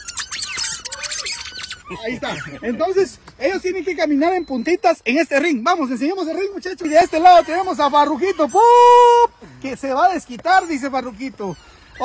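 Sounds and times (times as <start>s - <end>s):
rubber chicken toys squeaking: 0.0s - 5.0s, 5.8s - 8.8s, 10.1s - 12.0s.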